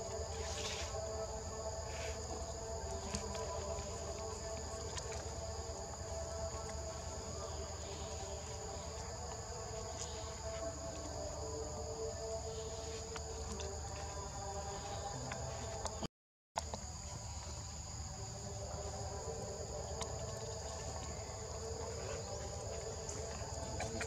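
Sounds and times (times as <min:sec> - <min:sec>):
low steady hum: 0:00.0 - 0:16.0
insects trilling: 0:00.0 - 0:24.0.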